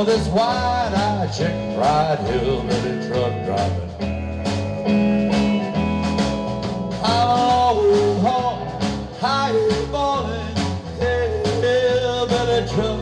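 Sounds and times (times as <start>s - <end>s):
drums steady beat: 0.0s - 13.0s
electric bass line: 0.0s - 13.0s
electric guitar lead: 0.0s - 13.0s.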